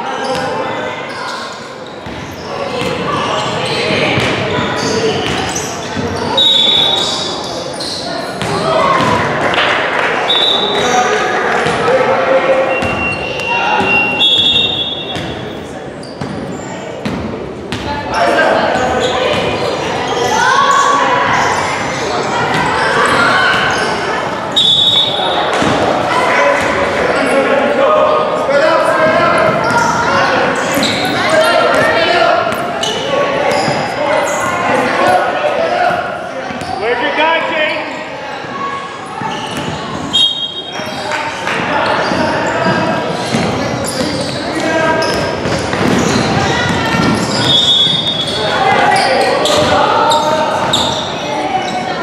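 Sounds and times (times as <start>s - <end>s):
indistinct voices in a hall: 0.0s - 52.0s.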